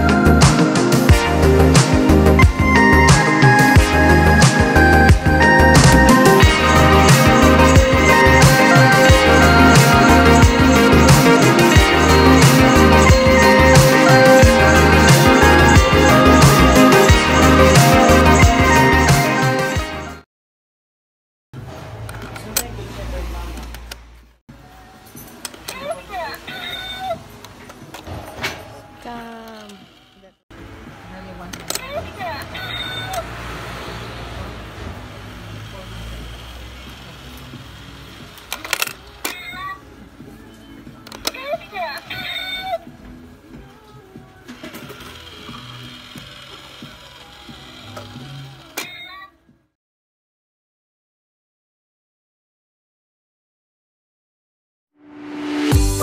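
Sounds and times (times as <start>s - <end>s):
small motor and gears whirring: 29.4s - 30.4s, 35.4s - 39.1s, 44.5s - 49.1s
high sliding voice-like calls: 32.5s - 33.3s.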